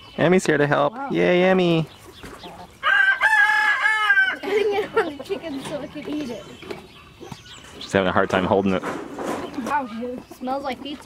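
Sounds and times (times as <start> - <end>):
rooster crowing: 2.8 - 4.5.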